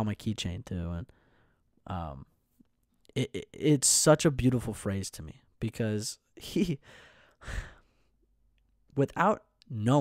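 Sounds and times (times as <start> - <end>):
man sighing into microphone: 6.8 - 8.0.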